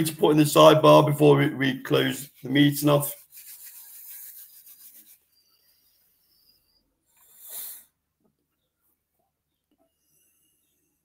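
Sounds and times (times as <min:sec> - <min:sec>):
faint rubbing on microphone: 0:02.0 - 0:05.7.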